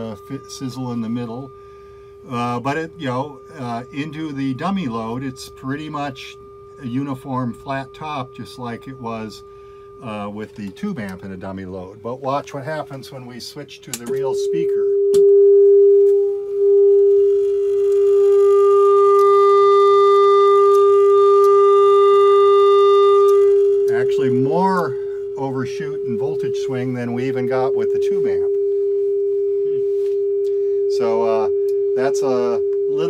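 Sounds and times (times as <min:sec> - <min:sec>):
sine test tone through speaker: 0:00.0 - 0:33.0.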